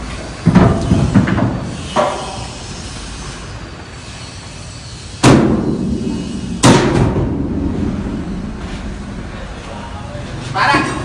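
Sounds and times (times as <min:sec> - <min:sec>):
heavy blows on steel container: 0:05.2 - 0:10.5.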